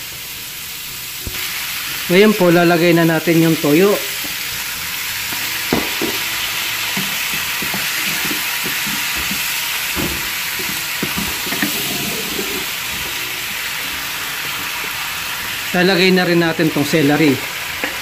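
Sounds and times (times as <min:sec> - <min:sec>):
food sizzling in a wok: 0:00.0 - 0:18.0
spatula scraping and knocking pan: 0:05.3 - 0:13.2.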